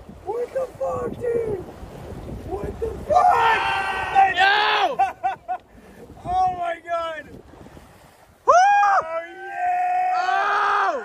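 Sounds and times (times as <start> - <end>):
wind buffeting microphone: 0.0 - 11.0
man's high-pitched excited cries: 3.0 - 5.6, 8.5 - 11.0.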